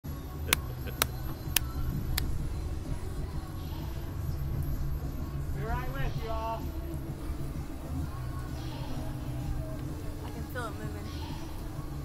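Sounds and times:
ride machinery rumble: 0:00.2 - 0:12.0.

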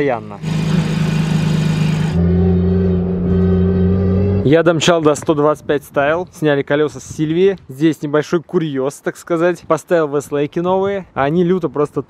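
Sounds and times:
car engine drone from inside cabin: 0:00.4 - 0:04.5.

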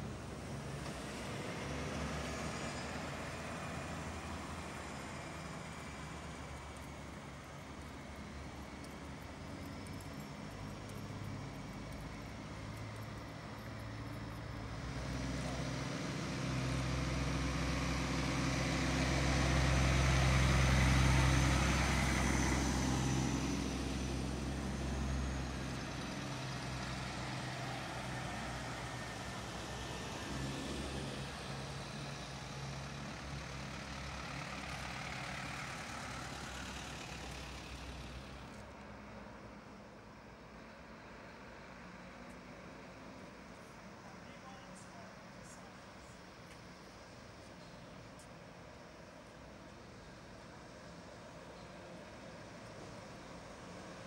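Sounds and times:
lorry diesel engines passing: 0:00.0 - 0:54.0.

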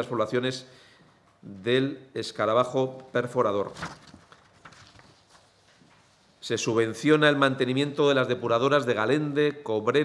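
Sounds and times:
paper rustling: 0:03.4 - 0:06.2.

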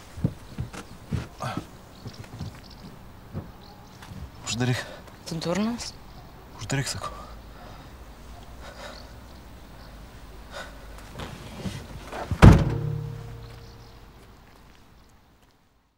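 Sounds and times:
faint knocks: 0:00.2 - 0:04.3, 0:12.3 - 0:14.0
car boot lid slamming shut: 0:12.3 - 0:13.8
low steady rumble: 0:12.4 - 0:14.1.

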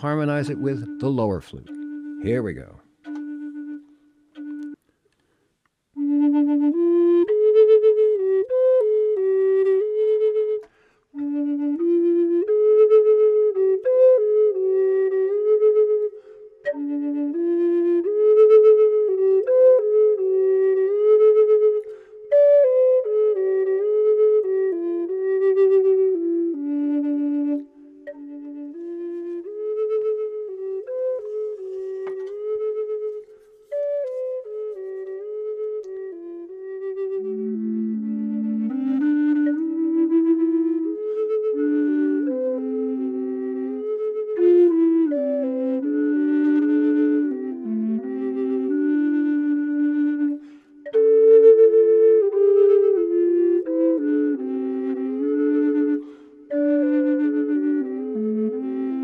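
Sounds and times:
flute slow melody: 0:00.0 - 0:59.0.

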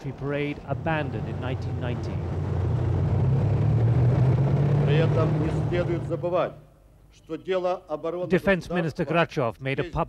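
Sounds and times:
diesel engines rumbling: 0:00.0 - 0:07.1.

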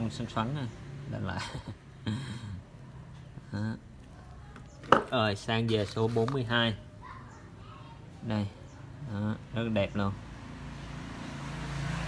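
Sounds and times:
motor vehicle passing by: 0:00.0 - 0:03.6, 0:08.6 - 0:12.0.

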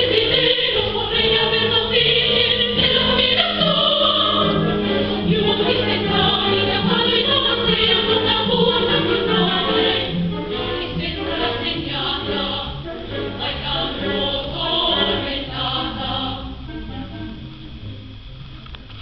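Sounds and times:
female choir singing: 0:00.0 - 0:16.6.

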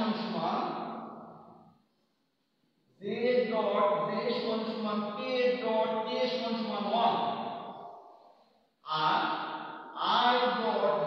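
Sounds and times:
man talking: 0:00.0 - 0:00.8, 0:03.0 - 0:07.4, 0:08.8 - 0:09.4, 0:10.0 - 0:11.0.

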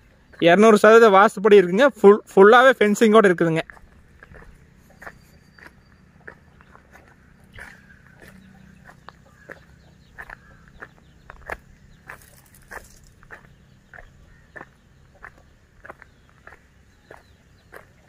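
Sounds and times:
footsteps crunching on dry fronds: 0:03.5 - 0:18.0.

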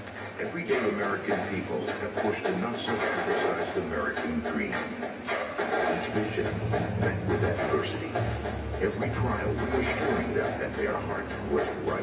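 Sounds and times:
background music: 0:00.0 - 0:12.0
indistinct voices: 0:00.0 - 0:12.0.

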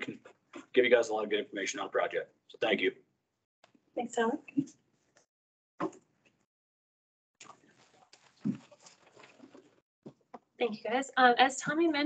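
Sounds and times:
faint rustling and bumping: 0:07.7 - 0:10.4.

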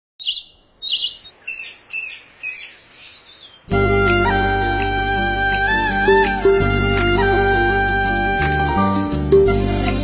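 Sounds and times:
bird chirping: 0:00.2 - 0:03.7
music: 0:03.7 - 0:10.0.

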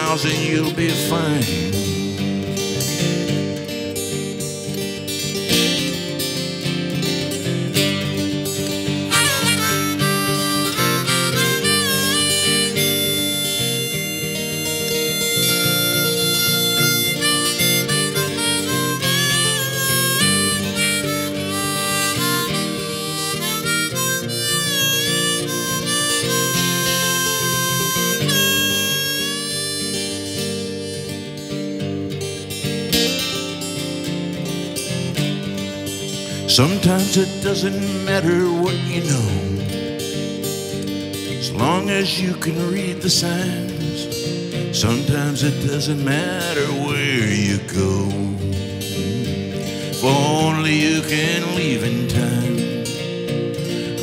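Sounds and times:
strummed acoustic guitar: 0:00.0 - 0:54.0
harmonica solo with bending notes: 0:08.6 - 0:32.7.

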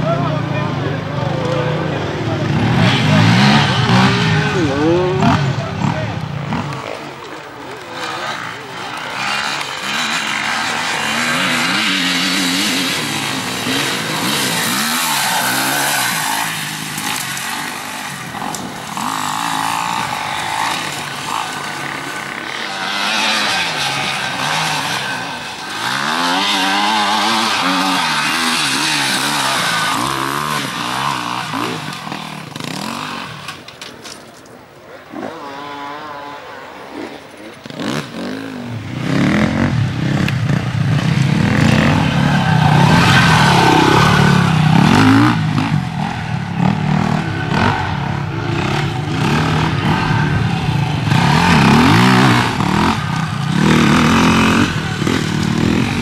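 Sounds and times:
dirt bikes revving: 0:00.0 - 0:56.0.

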